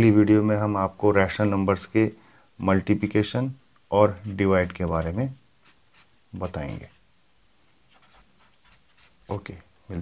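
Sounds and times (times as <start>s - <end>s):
pen scratching on paper: 5.6s - 6.9s, 7.9s - 9.4s.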